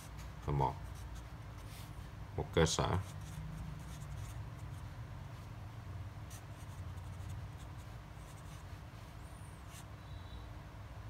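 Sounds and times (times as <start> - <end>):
low steady hum: 0.0 - 11.0
pen scratching on paper: 3.0 - 5.5, 6.3 - 9.9.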